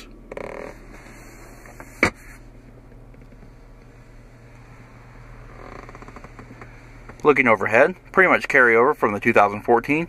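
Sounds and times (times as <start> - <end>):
armrest creaking: 0.0 - 7.6
low steady hum: 0.0 - 10.0.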